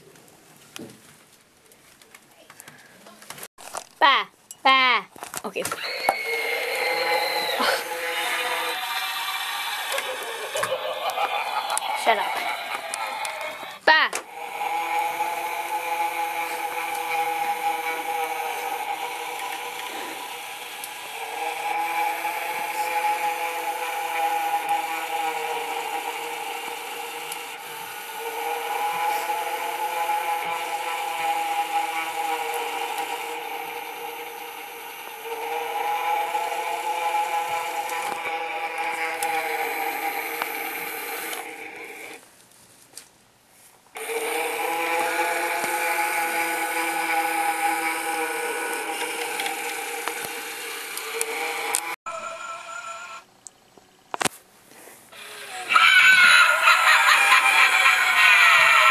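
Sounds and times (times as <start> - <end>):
mechanical whir with pitched hum: 5.7 - 42.2, 44.0 - 53.2.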